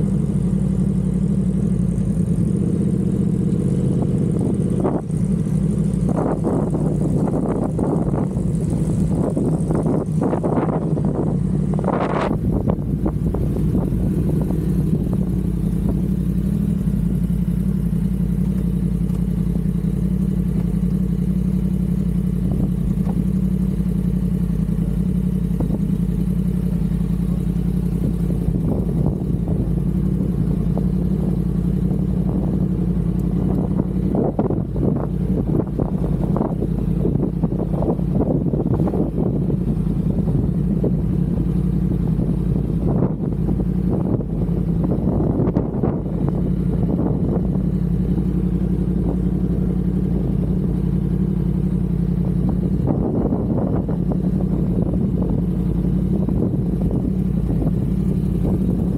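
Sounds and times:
motorcycle engine idling: 0.0 - 58.9.

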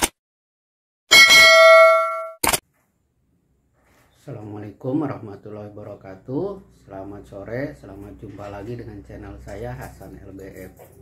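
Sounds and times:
bell ding: 1.1 - 2.4.

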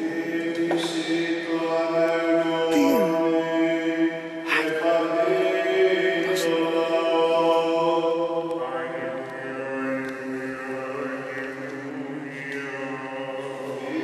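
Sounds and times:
man chanting: 0.0 - 7.8.

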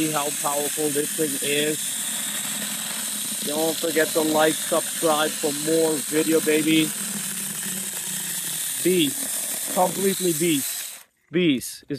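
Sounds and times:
person speaking: 0.0 - 1.9, 3.4 - 7.0, 8.7 - 11.9
electric chainsaw cutting wood: 0.0 - 11.1.

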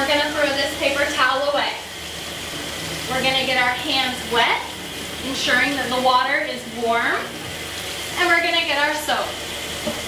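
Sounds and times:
woman talking: 0.0 - 1.8, 3.1 - 7.4, 8.2 - 9.4
water running into sink: 0.0 - 10.0.

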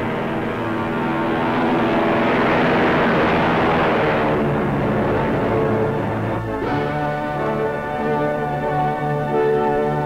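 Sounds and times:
orchestral film music: 0.0 - 10.0
propeller plane passing overhead: 0.0 - 10.0.

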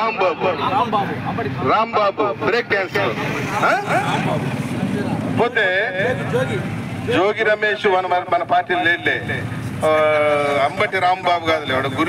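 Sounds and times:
man speaking into microphone: 0.0 - 12.0.

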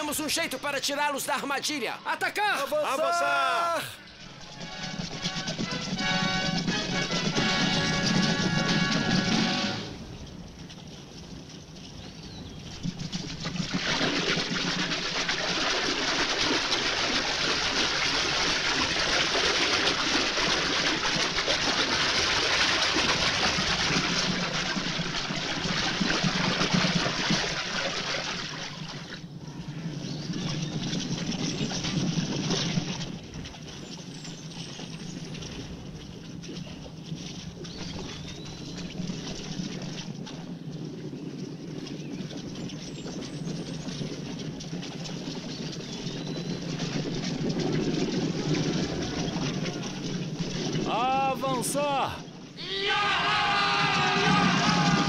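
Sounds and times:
horses galloping on dry ground: 0.0 - 1.9, 2.5 - 55.0
horses splashing through river: 4.1 - 52.5.

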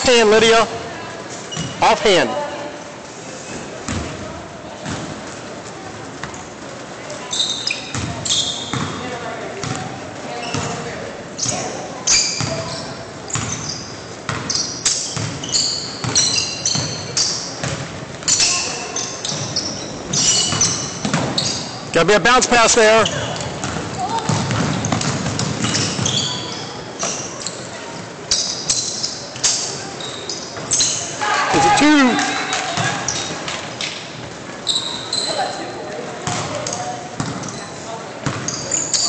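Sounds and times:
sneakers squeaking: 0.0 - 2.8, 3.4 - 39.0
basketball bouncing on wooden floor: 23.4 - 26.3, 37.2 - 37.5.

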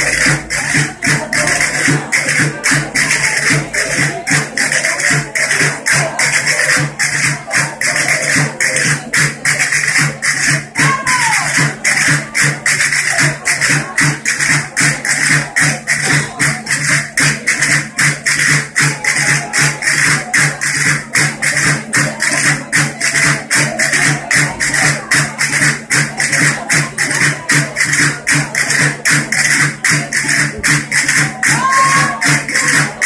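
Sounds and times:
drum beat: 0.0 - 33.0.

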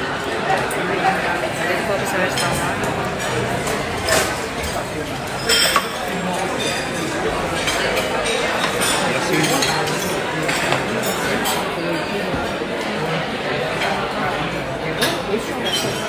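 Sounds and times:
many voices chattering: 0.0 - 16.0
plates glasses and cutlery clinking: 0.0 - 16.0.

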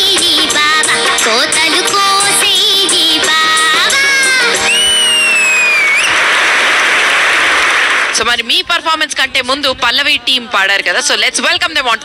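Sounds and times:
long high whistle: 4.7 - 6.2
audience applauding and cheering: 4.7 - 8.2.

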